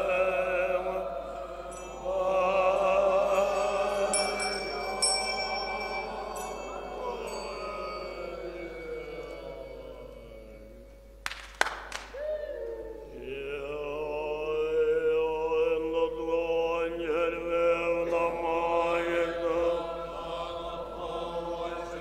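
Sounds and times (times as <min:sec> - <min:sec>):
monks chanting: 0:00.0 - 0:10.8, 0:13.0 - 0:22.0
small bell ringing: 0:01.7 - 0:10.7.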